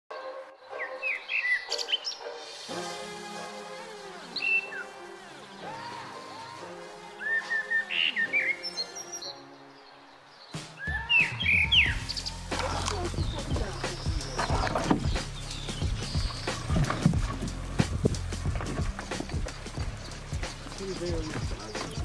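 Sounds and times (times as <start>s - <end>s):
birds chirping: 0.1s - 2.7s, 3.5s - 22.0s.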